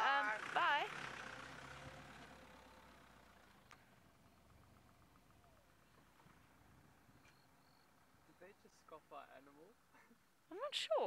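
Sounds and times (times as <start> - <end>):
faint vehicle engine hum: 0.0 - 11.0
faint high whistle: 7.1 - 7.9.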